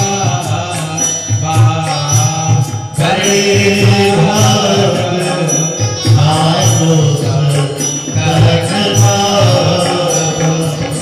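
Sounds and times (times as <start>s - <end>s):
hand drum beat: 0.0s - 11.0s
sustained instrumental tones: 0.0s - 11.0s.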